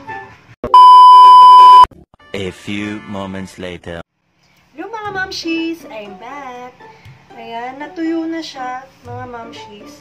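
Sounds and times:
high-pitched electronic beep: 0:00.7 - 0:01.9
faint background music: 0:02.2 - 0:10.0.

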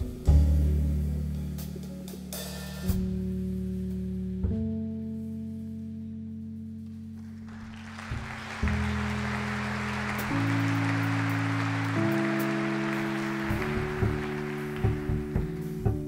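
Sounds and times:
big band playing: 0:07.5 - 0:16.0.

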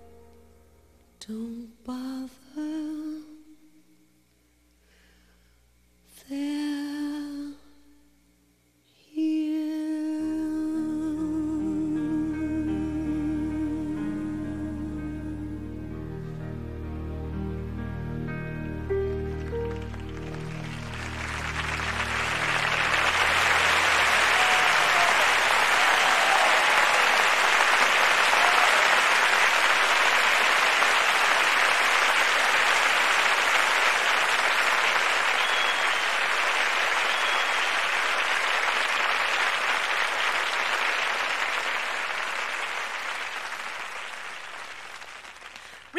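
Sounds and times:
orchestral chord: 0:14.2 - 0:24.4
audience applauding: 0:19.0 - 0:45.9
high whistles from crowd: 0:35.1 - 0:38.0.

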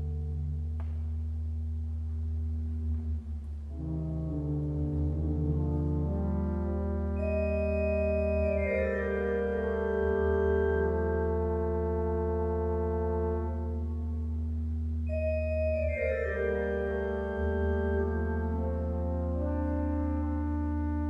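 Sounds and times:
pipe organ chords: 0:00.0 - 0:21.0.

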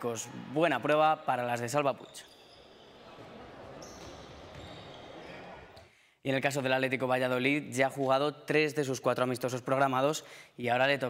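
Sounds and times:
shoe squeak: 0:02.0 - 0:05.8.

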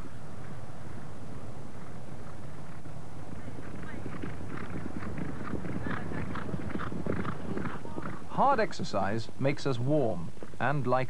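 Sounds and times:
horses galloping on turf: 0:00.9 - 0:11.0.

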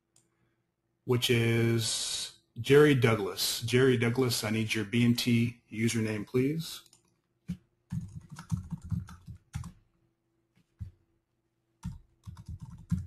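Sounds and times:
typing on computer keyboard: 0:06.8 - 0:09.8, 0:11.8 - 0:13.0.

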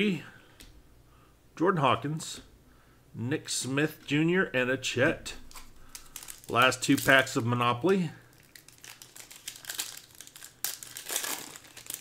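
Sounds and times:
foil wrapper crinkling: 0:05.5 - 0:12.0.

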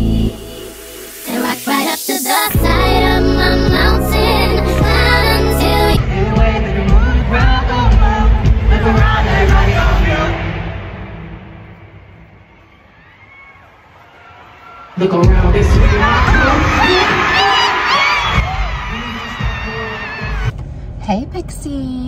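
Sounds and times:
crowd screaming and singing along: 0:00.0 - 0:11.4, 0:12.0 - 0:20.5
amplified music: 0:00.0 - 0:12.3.

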